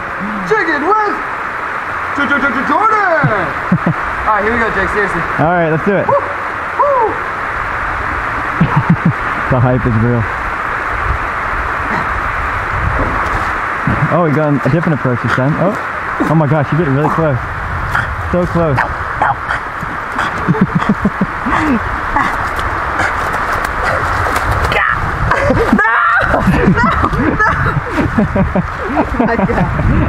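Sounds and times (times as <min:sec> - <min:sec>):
creek water running over weir: 0:00.0 - 0:30.0
low rumble: 0:03.3 - 0:30.0
hands and feet slapping wet concrete: 0:22.4 - 0:26.1.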